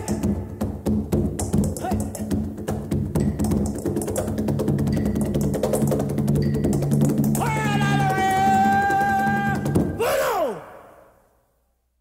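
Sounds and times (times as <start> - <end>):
percussion track: 0.0 - 10.0
person crying out sliding down: 7.4 - 10.8.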